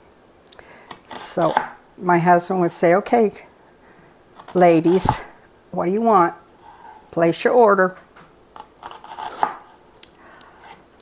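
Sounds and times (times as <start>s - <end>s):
knife slicing onion on board: 0.9s - 1.8s, 4.4s - 5.3s, 8.6s - 9.7s.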